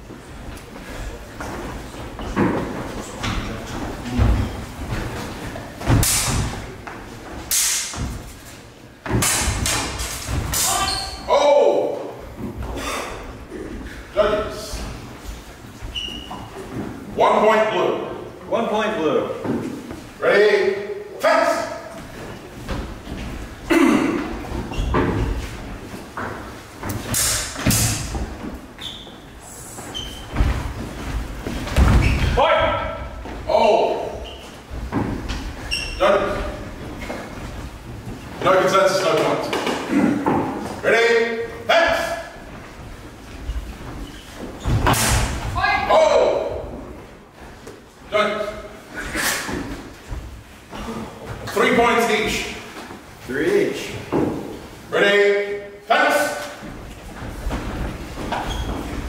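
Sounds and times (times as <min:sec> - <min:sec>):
footsteps on wooden floor: 0:00.0 - 0:06.0, 0:28.1 - 0:32.4, 0:56.6 - 0:59.0.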